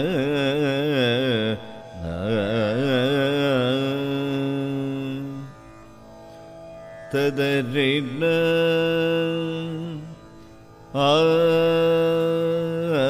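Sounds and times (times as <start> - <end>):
man singing with ornaments: 0.0 - 5.6, 7.1 - 13.0.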